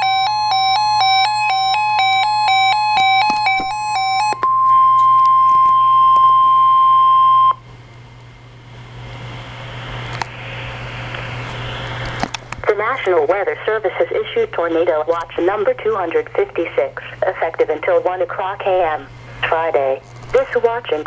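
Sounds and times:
steady high alarm tone: 0:00.0 - 0:07.6
broadcast hiss: 0:09.8 - 0:21.0.

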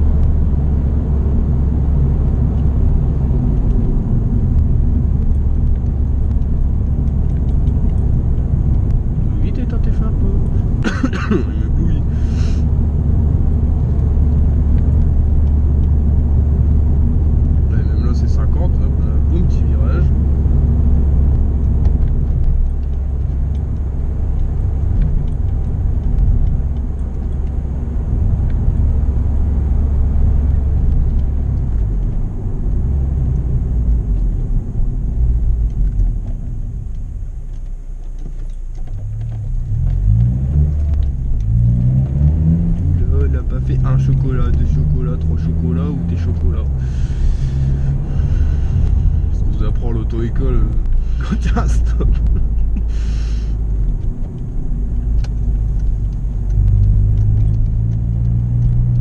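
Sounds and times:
car engine droning from inside cabin: 0:00.0 - 0:59.0.

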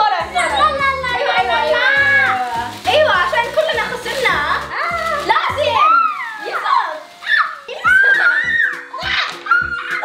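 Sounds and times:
children calling out excitedly: 0:00.0 - 0:10.0.

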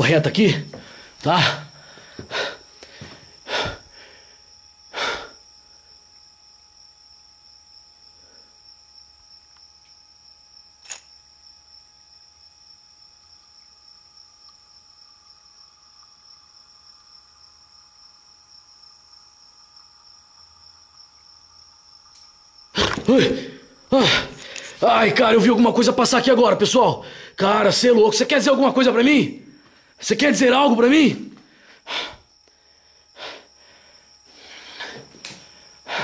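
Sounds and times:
sharp click: 0:10.8 - 0:11.1.

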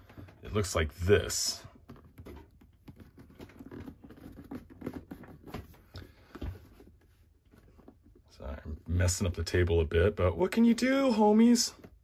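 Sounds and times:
plastic wrap rustling: 0:02.1 - 0:06.2.

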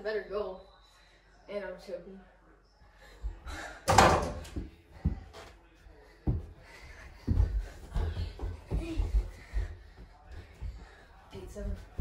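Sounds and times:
backboard banging against door: 0:03.9 - 0:04.5.

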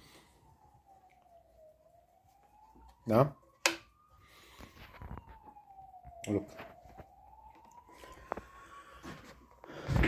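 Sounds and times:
faint siren wailing: 0:00.0 - 0:10.0.

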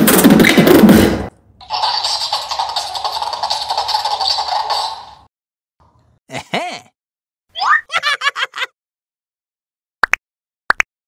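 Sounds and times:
toy beatboxing through tinny speaker: 0:01.6 - 0:05.2.

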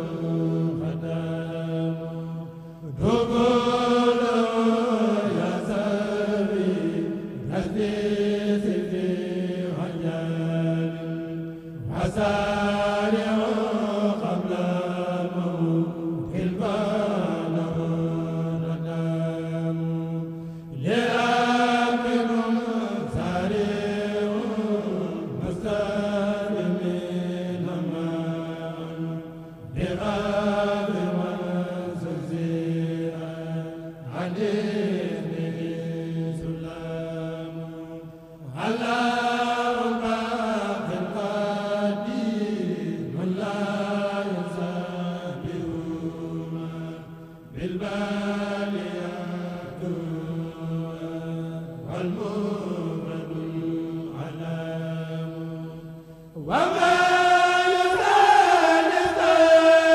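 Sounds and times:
men chanting together: 0:00.0 - 0:59.9.

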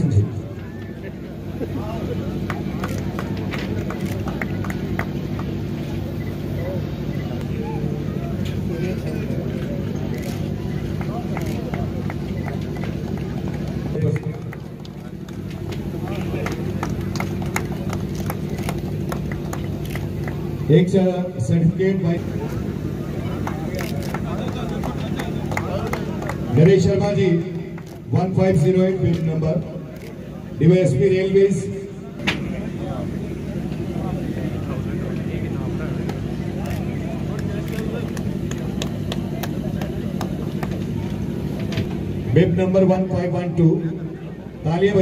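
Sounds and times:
people chattering: 0:00.0 - 0:42.3
steady low hum: 0:00.0 - 0:45.0
people clapping: 0:00.7 - 0:06.7, 0:09.6 - 0:20.7, 0:22.5 - 0:28.3, 0:34.7 - 0:41.6.

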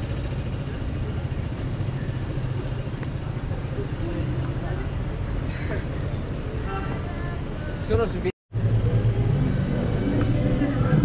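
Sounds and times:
passers-by voices: 0:00.0 - 0:11.0
vehicle engines rumbling: 0:00.0 - 0:11.0.

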